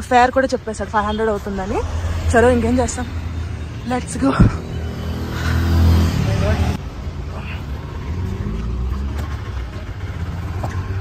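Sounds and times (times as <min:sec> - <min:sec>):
low traffic rumble: 0:00.0 - 0:11.0
vehicle engine running close: 0:00.6 - 0:11.0.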